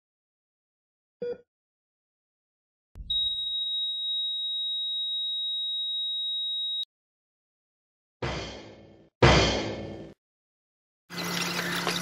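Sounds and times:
heart monitor flatline beep: 3.1 - 6.8.

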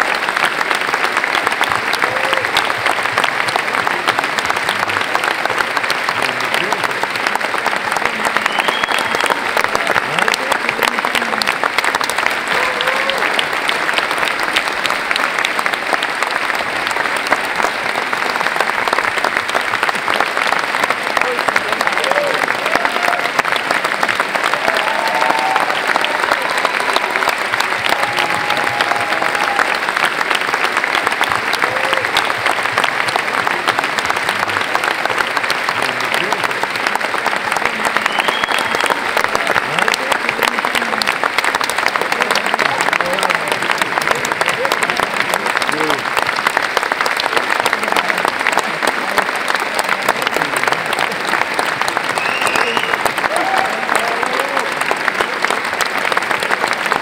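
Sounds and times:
audience clapping: 0.0 - 57.0
people cheering: 0.0 - 57.0.

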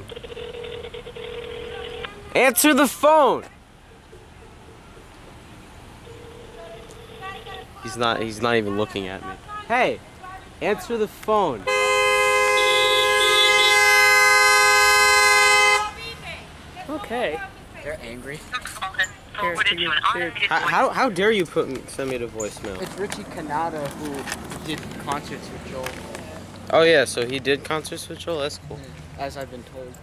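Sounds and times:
phone ringback tone: 0.0 - 2.0, 6.0 - 7.7
two-tone car horn blast: 11.6 - 16.1.

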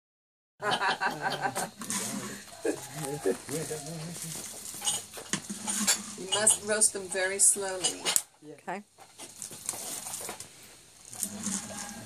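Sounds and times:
people laughing: 0.6 - 3.8
people talking: 0.8 - 4.4, 6.2 - 8.8.

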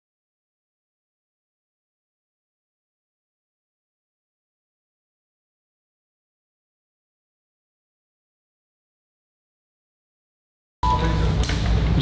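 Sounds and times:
low hum: 10.8 - 12.0
room noise: 10.8 - 12.0.

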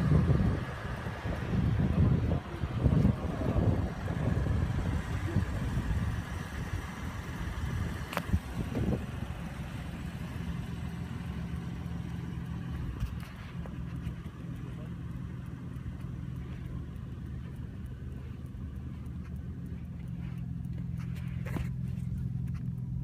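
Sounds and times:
car engine idling: 0.0 - 23.0.

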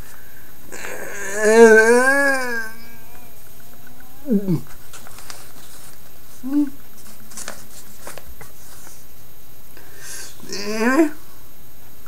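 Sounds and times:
newspaper rustling: 4.7 - 9.1.

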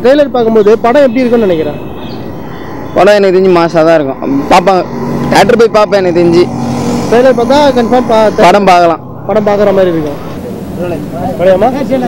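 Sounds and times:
man talking: 0.0 - 1.9, 3.0 - 12.0
road traffic passing: 0.0 - 12.0.

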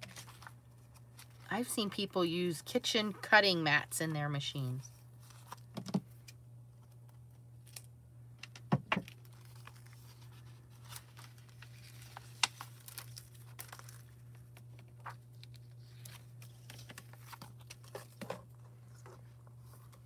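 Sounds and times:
foil sheet crinkling: 0.0 - 2.1, 9.1 - 20.0
low steady hum: 0.0 - 20.0.

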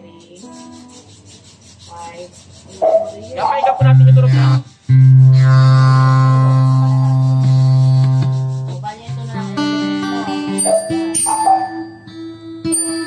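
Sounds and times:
acoustic guitar strum: 2.9 - 13.0
picked guitar notes: 3.4 - 13.0.

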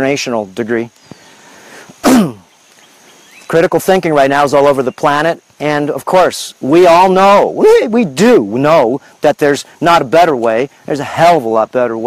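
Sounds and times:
man's explosive vocal burst: 1.6 - 2.5.

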